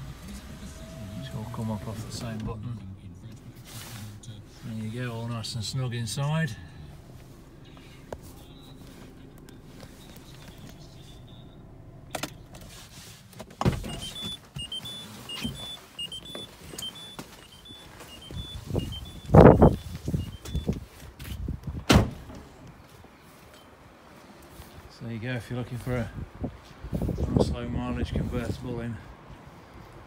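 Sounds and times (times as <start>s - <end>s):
car door clunks: 13.4s - 14.8s, 21.8s - 22.5s
car door shutting: 13.4s - 20.8s, 21.7s - 22.5s
car warning chime beeping: 13.9s - 20.8s.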